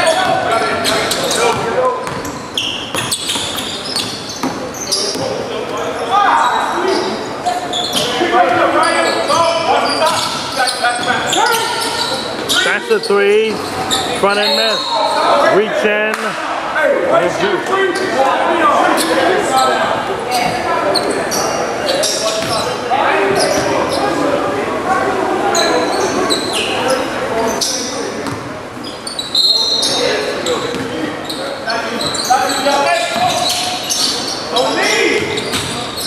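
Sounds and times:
sneaker squeaks: 0.0 - 15.6, 18.8 - 24.2, 25.5 - 36.0.

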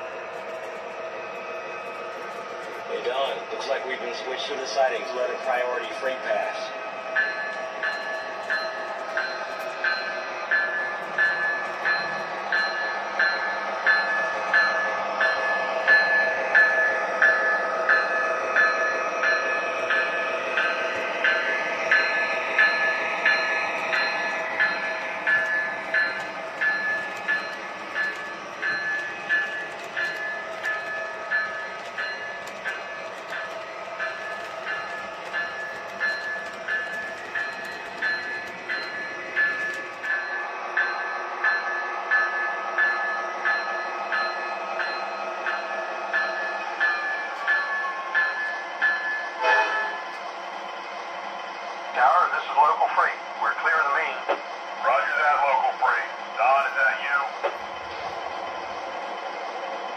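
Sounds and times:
model train motors humming: 0.0 - 59.9
regular clicks: 23.6 - 40.2.

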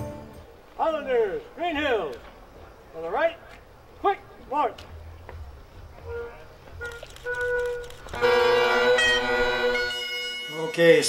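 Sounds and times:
bagpipes playing: 6.0 - 11.0.

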